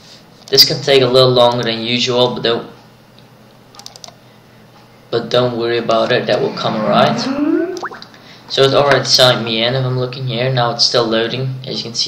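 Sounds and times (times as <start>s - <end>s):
light computer clicks: 3.7s - 4.2s.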